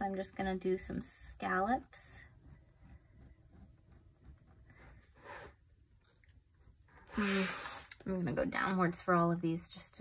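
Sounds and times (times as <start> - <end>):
gel pen scratching on paper: 0.0 - 8.1.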